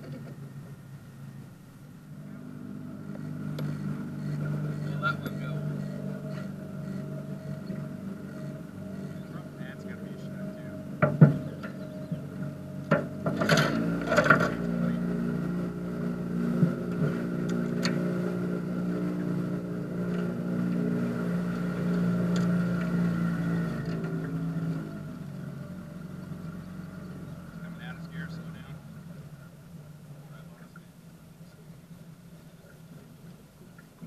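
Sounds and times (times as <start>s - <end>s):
boat motor running: 0.0s - 34.0s
sharp knocks: 11.0s - 11.8s, 12.8s - 14.6s.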